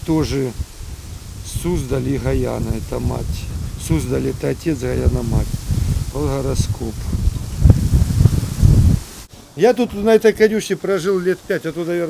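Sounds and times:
wind buffeting microphone: 0.0s - 9.3s.

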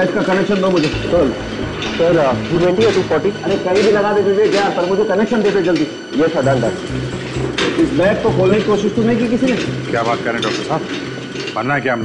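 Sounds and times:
pulsing low hum: 0.9s - 4.4s, 6.4s - 12.0s.

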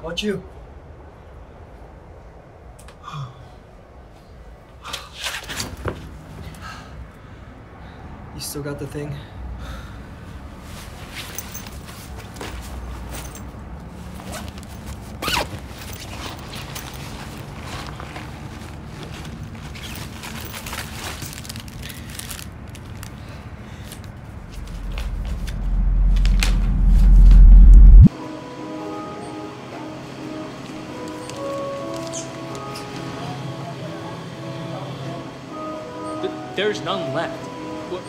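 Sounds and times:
clothing rustling: 10.6s - 26.4s
low rumbling riser: 24.2s - 28.1s
light music with plucked notes: 34.8s - 38.0s.

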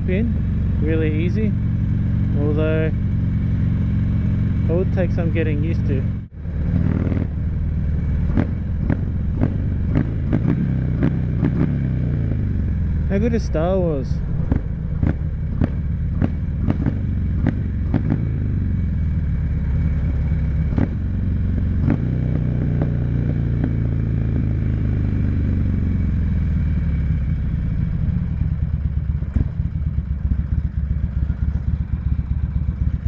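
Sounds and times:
motorcycle engine running: 0.0s - 33.0s.

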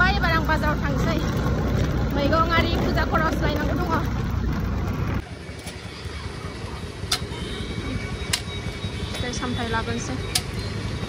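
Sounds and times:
low rumble of traffic: 0.0s - 11.0s.

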